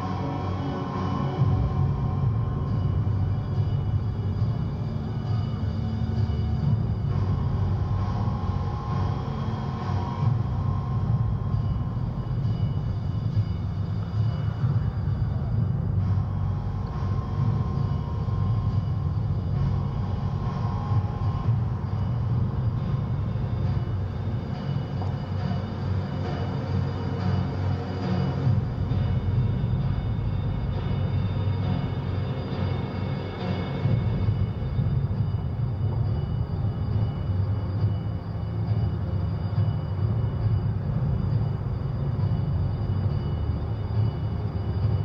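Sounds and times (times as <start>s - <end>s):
low outdoor rumble: 0.0s - 45.0s.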